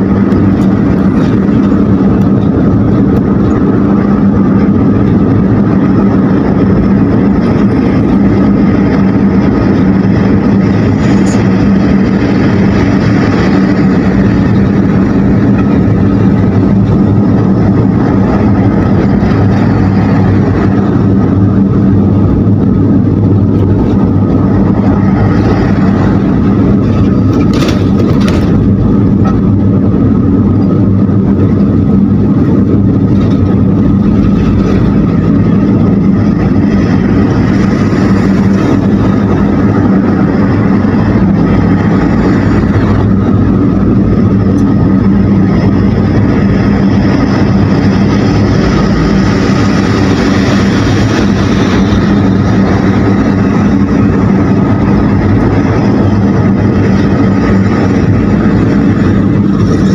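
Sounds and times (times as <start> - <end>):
car engine and road noise: 0.0 - 59.9.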